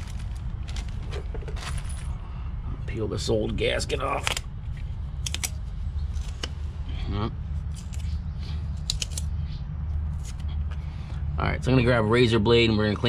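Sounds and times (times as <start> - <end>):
low steady rumble: 0.0 - 13.0
gasket snapping and crackling: 4.2 - 4.4, 5.2 - 5.6, 8.8 - 9.3.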